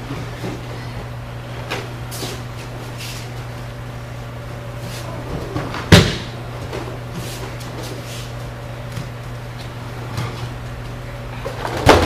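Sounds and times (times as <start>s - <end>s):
steady low hum: 0.0s - 12.0s
feet and bodies thumping on mat: 4.8s - 10.8s.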